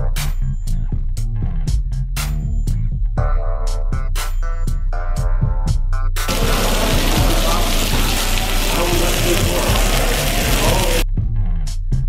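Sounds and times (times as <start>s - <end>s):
meat sizzling in a skillet: 6.3s - 11.0s.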